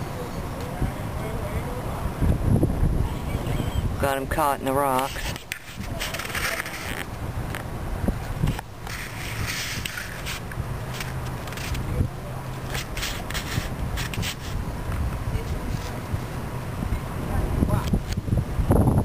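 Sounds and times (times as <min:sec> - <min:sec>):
wind on microphone: 0:00.0 - 0:19.0
scraping crackling handling noise: 0:04.9 - 0:07.7, 0:08.4 - 0:11.9, 0:12.5 - 0:16.3.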